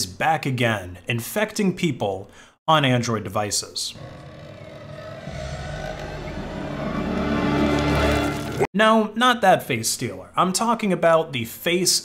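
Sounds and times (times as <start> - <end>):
ominous low drone: 3.9 - 8.7.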